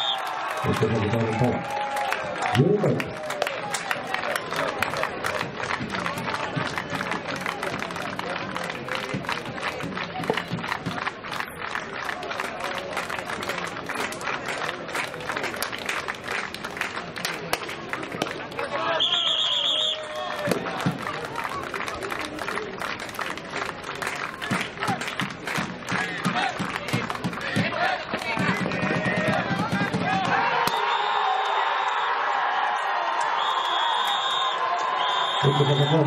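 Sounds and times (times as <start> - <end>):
whistle blown: 0.0 - 0.3, 18.9 - 20.1, 30.6 - 32.1, 33.3 - 36.0
spectators clapping: 0.0 - 36.0
spectators talking: 3.7 - 31.7, 33.2 - 36.0.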